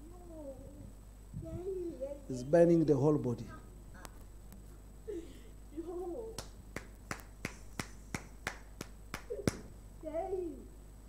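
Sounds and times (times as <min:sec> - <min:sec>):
sharp hand claps: 0:06.4 - 0:09.7.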